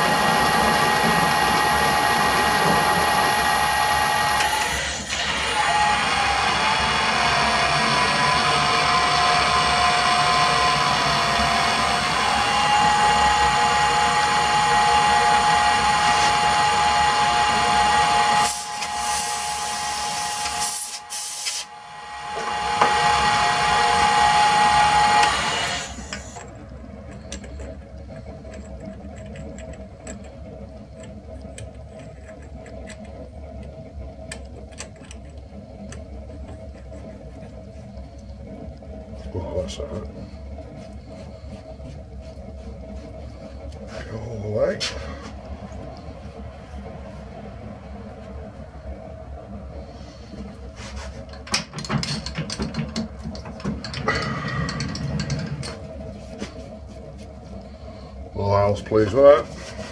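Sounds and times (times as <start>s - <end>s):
metal lathe whining: 0.0s - 59.9s.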